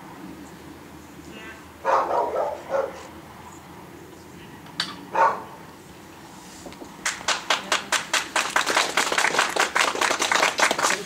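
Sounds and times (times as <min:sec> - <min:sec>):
dog barking: 0:01.8 - 0:03.1, 0:05.1 - 0:05.6
spectators applauding: 0:07.0 - 0:11.0.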